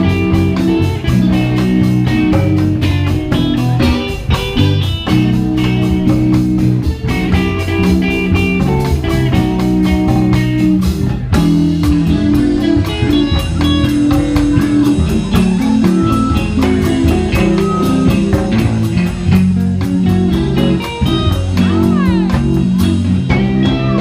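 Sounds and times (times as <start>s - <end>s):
bass guitar: 0.0s - 24.0s
drum kit beat: 0.0s - 24.0s
electric guitars: 0.0s - 24.0s.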